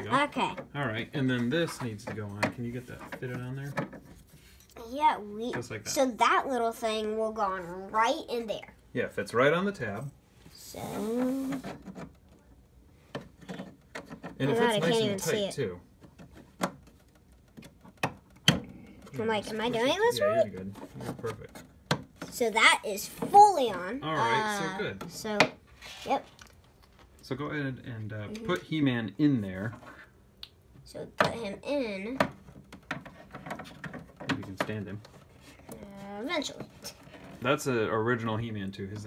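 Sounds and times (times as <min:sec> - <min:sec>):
hard plastic clicking and tapping: 0:32.1 - 0:35.8.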